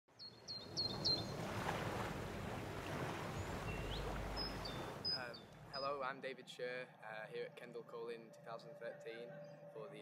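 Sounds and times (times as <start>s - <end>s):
outdoor background noise: 0.1s - 9.8s.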